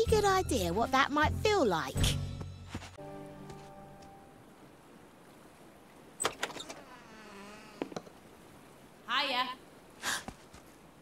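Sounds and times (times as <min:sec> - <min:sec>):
door creaking: 0:06.2 - 0:08.2.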